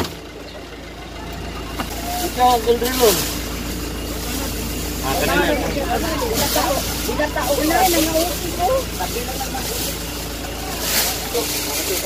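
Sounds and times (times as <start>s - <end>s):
faint constant hum: 0.0s - 12.0s
low background rumble: 0.0s - 12.0s.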